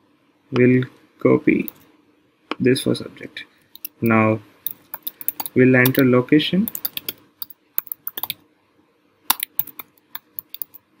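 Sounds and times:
typing on computer keyboard: 0:03.8 - 0:04.0, 0:04.9 - 0:06.0, 0:06.7 - 0:08.4, 0:09.3 - 0:10.8.

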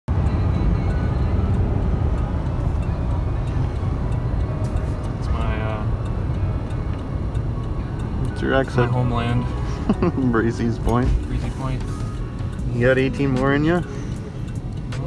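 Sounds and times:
tyre and engine rumble: 0:00.1 - 0:15.0.

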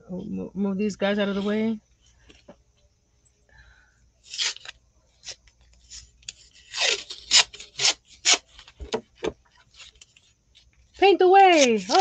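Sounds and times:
tape peeling off roll: 0:04.3 - 0:08.8.

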